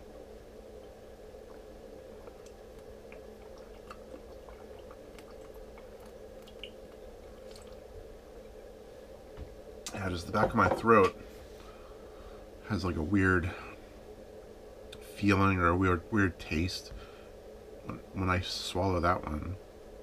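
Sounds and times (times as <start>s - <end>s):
low room hum: 0.0s - 20.0s
man swallowing water: 0.8s - 7.9s.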